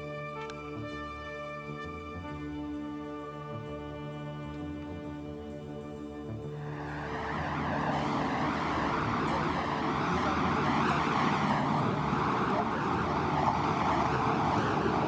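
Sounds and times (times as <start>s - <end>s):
background music: 0.0s - 15.0s
street traffic rushing: 6.4s - 15.0s.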